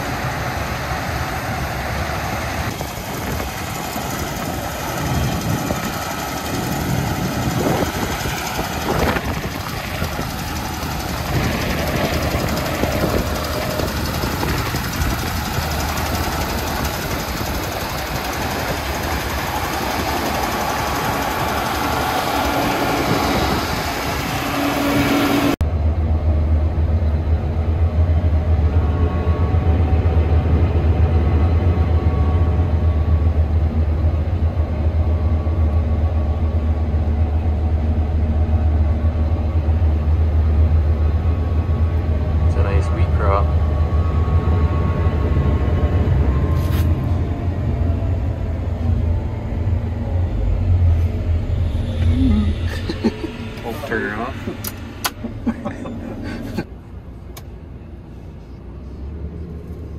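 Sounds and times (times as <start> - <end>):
combine harvester rushing noise: 0.0 - 57.3
low engine drone inside cab: 0.0 - 59.9.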